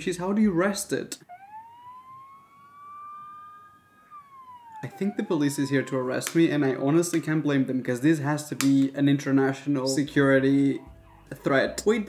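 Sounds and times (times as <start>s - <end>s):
faint siren wailing: 0.1s - 8.8s, 9.4s - 12.0s.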